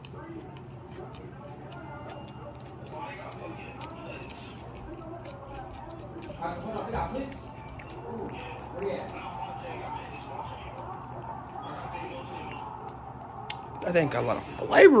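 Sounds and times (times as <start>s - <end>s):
faint voices in room: 0.0s - 15.0s
person chewing food: 0.0s - 15.0s.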